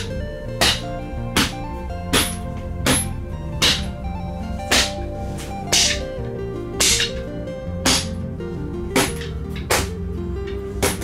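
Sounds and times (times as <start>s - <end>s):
sticks smacking punching bag: 0.0s - 4.0s, 4.7s - 6.1s, 6.8s - 8.3s, 9.0s - 10.1s, 10.8s - 11.0s
background music: 0.0s - 11.0s.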